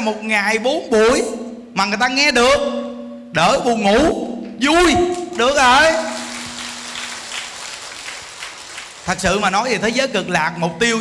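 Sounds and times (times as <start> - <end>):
audience applauding faintly: 5.1 - 9.7.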